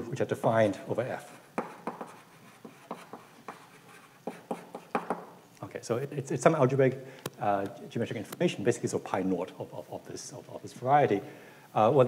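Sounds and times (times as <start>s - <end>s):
chalk tapping and scraping on blackboard: 1.1s - 5.4s.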